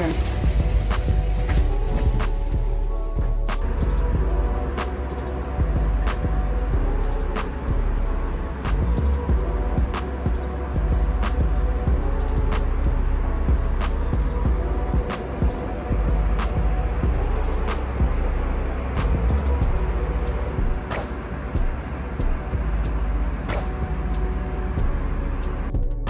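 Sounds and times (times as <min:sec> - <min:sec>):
airplane cabin rumble: 0:00.0 - 0:26.0
background music with beat: 0:00.0 - 0:26.0.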